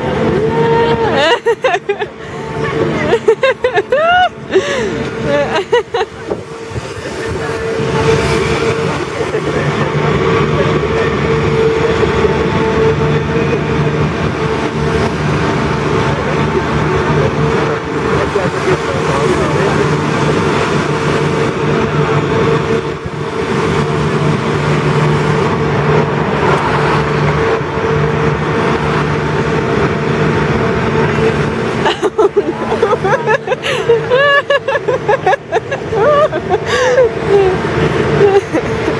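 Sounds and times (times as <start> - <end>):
hydraulic machinery engine hum: 0.0 - 38.9.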